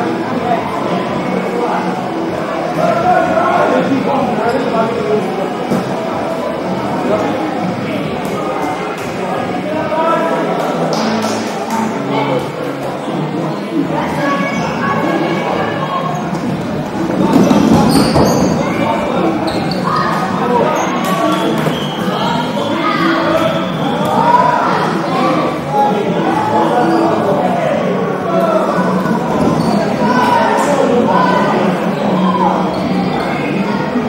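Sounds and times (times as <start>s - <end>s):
players shouting and chattering: 0.0s - 34.0s.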